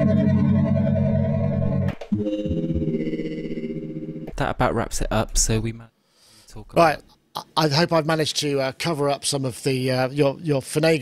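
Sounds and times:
synthesizer held chords: 0:00.0 - 0:04.6
man speaking: 0:04.3 - 0:05.9, 0:06.5 - 0:11.0.

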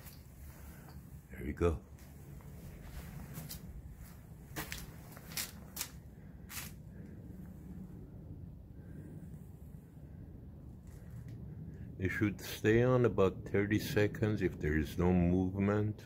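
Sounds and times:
low background rumble: 0:00.0 - 0:16.0
footstep scuffs and clicks: 0:01.9 - 0:06.8.

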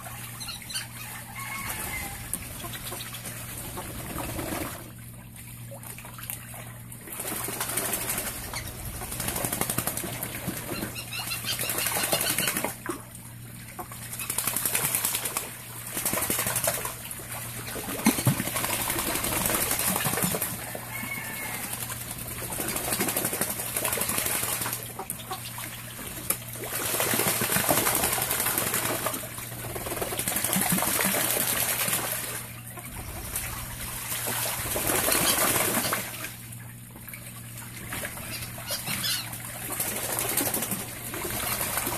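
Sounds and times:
ducks splashing in water: 0:00.0 - 0:41.9.

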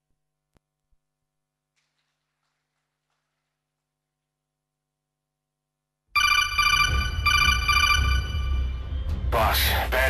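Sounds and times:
electronic ringing call tone: 0:06.2 - 0:08.8.

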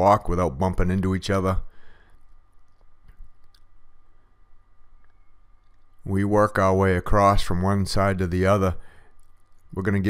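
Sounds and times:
steady low hum: 0:00.0 - 0:10.0
faint clicks: 0:02.1 - 0:03.8, 0:05.0 - 0:06.1.

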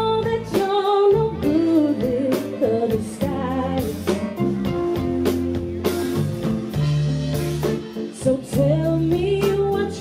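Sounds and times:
woman singing: 0:00.0 - 0:04.3, 0:08.0 - 0:10.0
electric guitar: 0:00.0 - 0:10.0
drum and cymbal strokes: 0:00.5 - 0:10.0.

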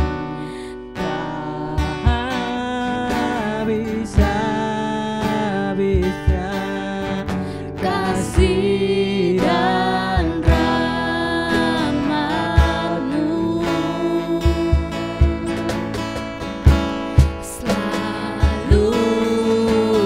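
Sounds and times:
strummed acoustic guitar: 0:00.0 - 0:20.0
woman singing worship song: 0:00.8 - 0:04.8, 0:05.8 - 0:15.9, 0:17.4 - 0:20.0
low thumps: 0:14.4 - 0:19.1.

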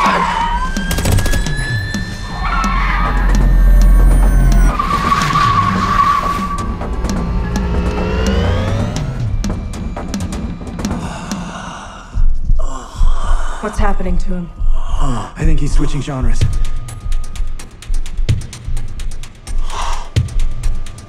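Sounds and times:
tire squeal: 0:00.0 - 0:00.9, 0:02.2 - 0:08.4.

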